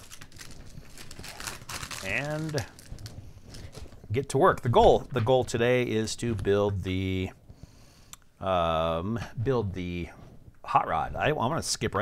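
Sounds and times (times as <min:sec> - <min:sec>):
plastic packaging crinkling: 0:00.0 - 0:04.1.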